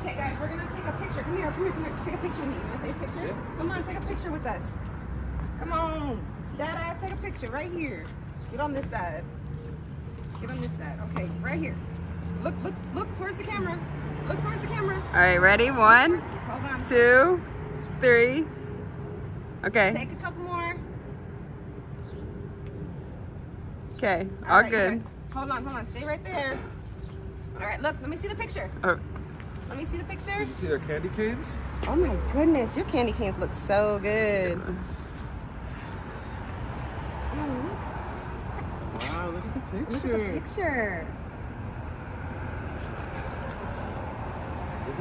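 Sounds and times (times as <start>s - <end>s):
distant traffic rumble: 0.0s - 45.0s.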